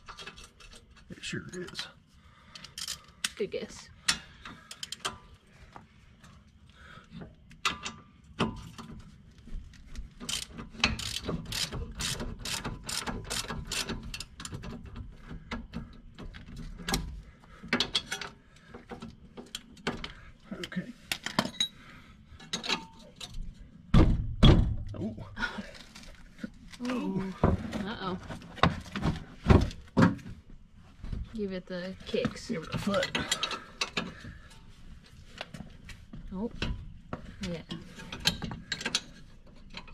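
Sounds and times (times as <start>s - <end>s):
ratchet wrench clicking: 10.3s - 14.3s.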